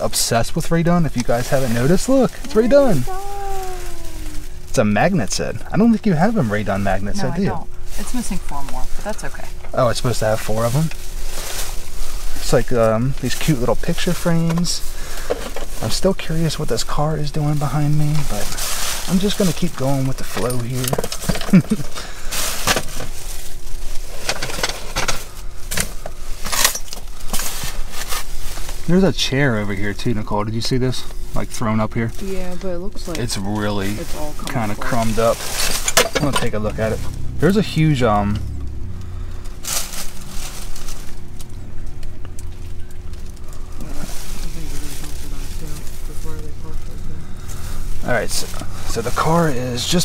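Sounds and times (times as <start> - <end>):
faint steady hum: 0.0 - 50.0
plastic bags rustling and crinkling: 1.2 - 9.1, 9.8 - 30.0, 33.1 - 37.4, 39.5 - 50.0
faint voice: 2.4 - 4.6.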